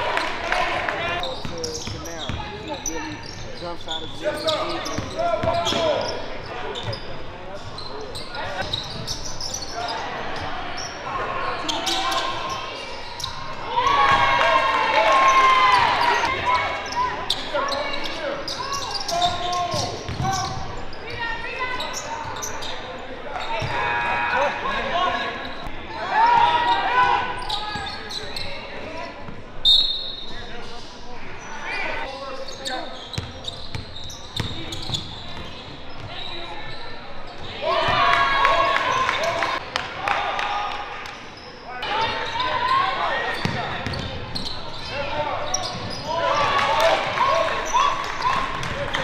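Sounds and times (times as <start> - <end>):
voices echoing in gym: 0.0 - 49.0.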